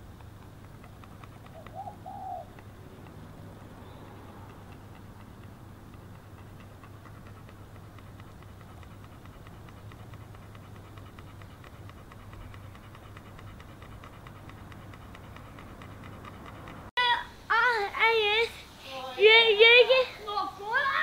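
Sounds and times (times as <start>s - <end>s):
steady low hum: 0.0s - 20.8s
dove cooing: 1.5s - 3.1s.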